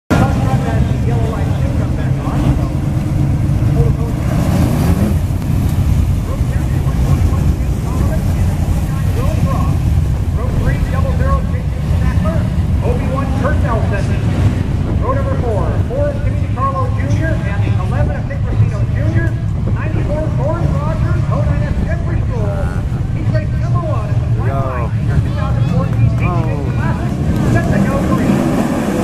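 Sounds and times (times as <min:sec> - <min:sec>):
engine revving: 0:00.1 - 0:29.0
race car engines rumbling: 0:00.1 - 0:29.0.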